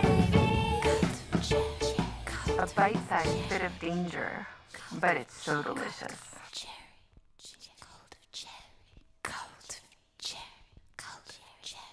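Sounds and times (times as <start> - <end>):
woman whispering: 4.2 - 11.9.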